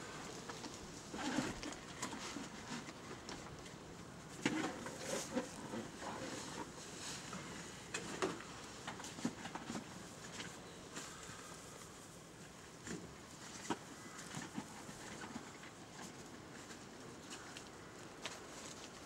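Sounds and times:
dry grass rustling and crackling: 0.0 - 19.0.

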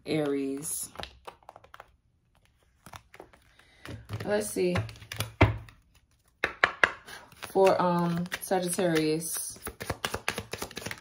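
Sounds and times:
cards clicking on a table: 4.8 - 11.0.

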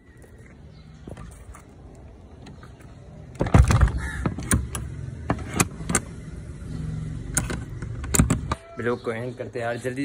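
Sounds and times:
metal bolt and padlock clicking: 3.4 - 6.2, 7.3 - 8.8.

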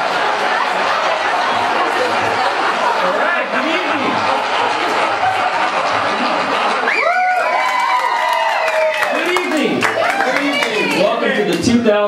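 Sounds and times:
audience cheering and clapping: 0.0 - 12.0
long whoop: 6.9 - 9.1.

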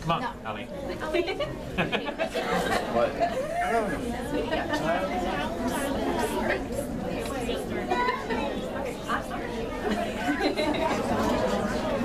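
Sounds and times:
murmur of crowd chatter: 0.0 - 12.0.

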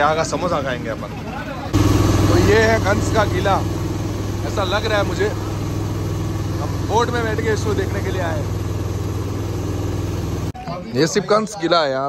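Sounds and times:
motorboat engine humming: 0.0 - 10.6.

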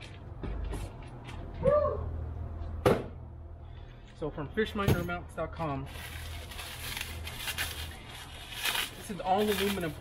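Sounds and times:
plastic packaging crinkling: 5.9 - 10.0.

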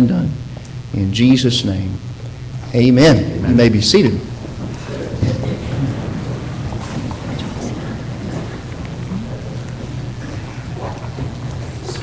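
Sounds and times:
rustling and shuffling: 4.2 - 12.0.

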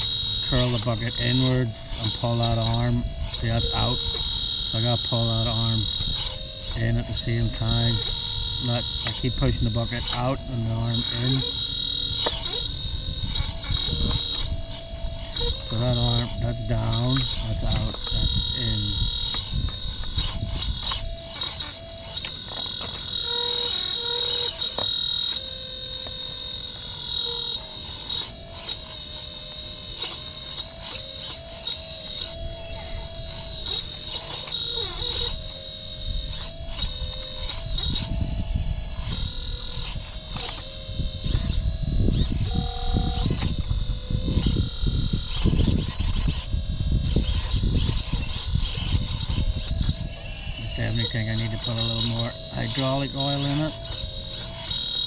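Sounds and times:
electric hydraulic pump whining: 0.0 - 55.0.

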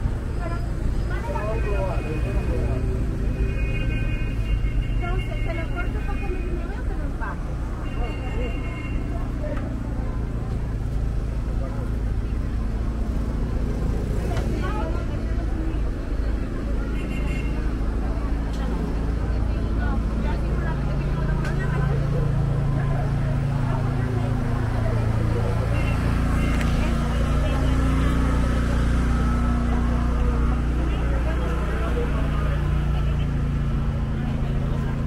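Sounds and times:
vehicle engine running: 9.1 - 35.0.

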